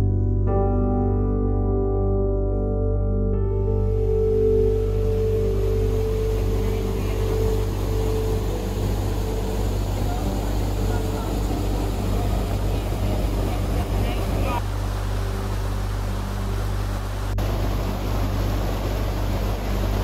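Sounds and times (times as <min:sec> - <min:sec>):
soft piano music: 0:00.0 - 0:20.0
steady low hum: 0:02.6 - 0:20.0
creek water rushing: 0:03.9 - 0:20.0.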